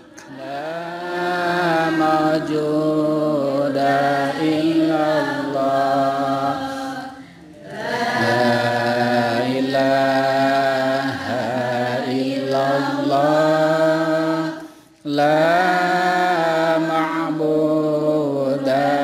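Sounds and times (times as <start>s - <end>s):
man chanting through microphone: 0.0s - 6.9s, 8.2s - 19.0s.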